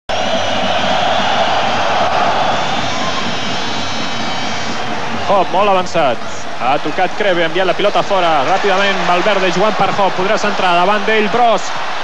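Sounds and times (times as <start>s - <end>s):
stadium crowd roaring: 0.1s - 12.0s.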